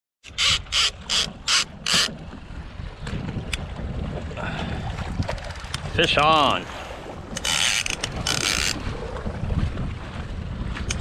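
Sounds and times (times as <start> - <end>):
fishing reel clicker ratcheting: 0.3 - 2.1, 7.3 - 8.8.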